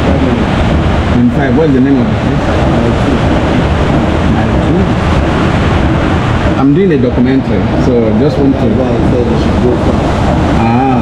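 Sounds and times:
loud rushing noise with low rumble: 0.0s - 11.0s
faint voice: 10.6s - 11.0s.

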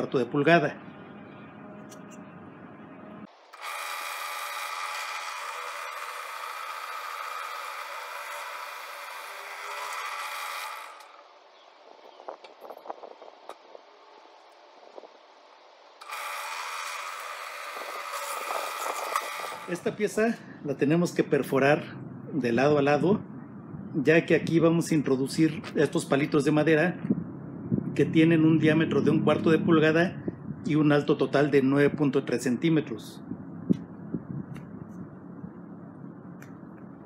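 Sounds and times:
drill press boring wood: 3.3s - 11.4s, 16.0s - 19.8s.

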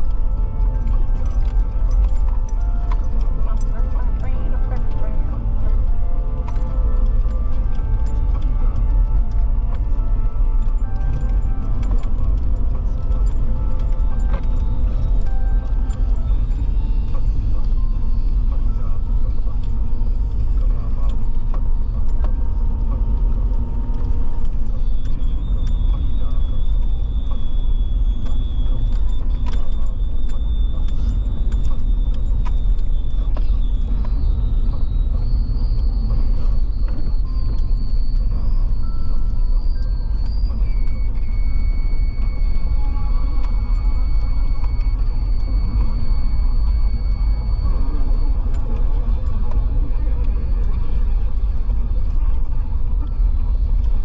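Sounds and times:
faint high-pitched whine: 0.0s - 54.0s.

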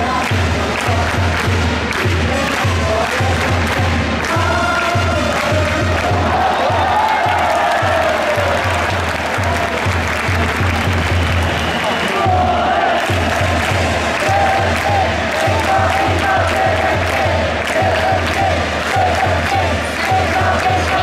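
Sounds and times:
bass drum beat: 0.0s - 21.0s
crowd chanting: 0.0s - 21.0s.

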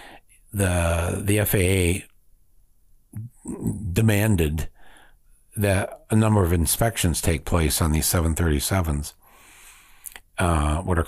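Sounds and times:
man speaking: 0.5s - 2.1s, 3.2s - 4.8s, 5.6s - 9.2s, 10.3s - 11.0s.

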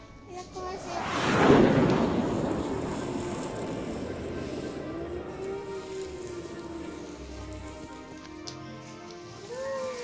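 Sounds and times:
faint music: 0.0s - 10.0s
whooshing rumbling sound effect: 0.6s - 8.1s.

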